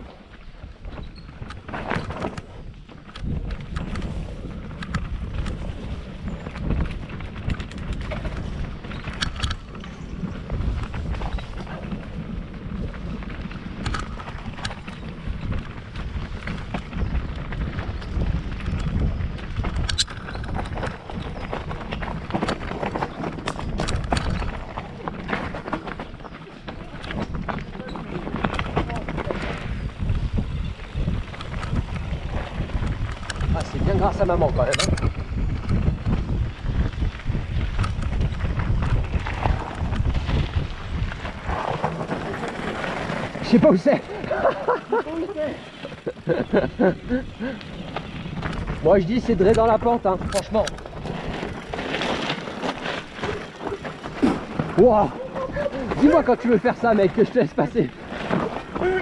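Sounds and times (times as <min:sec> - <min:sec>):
wind rumble on microphone: 0:00.0 - 0:59.0
bike knocks and rattles: 0:00.1 - 0:59.0.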